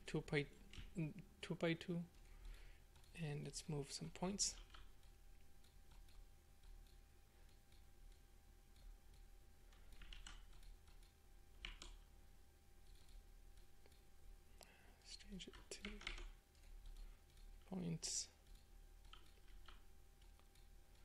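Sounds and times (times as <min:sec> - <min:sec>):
computer mouse clicks: 0:04.6 - 0:12.0, 0:18.4 - 0:21.0.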